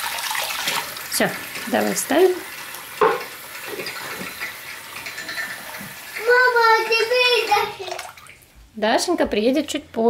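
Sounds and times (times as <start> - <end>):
tap water running into basin: 0.0 - 8.6.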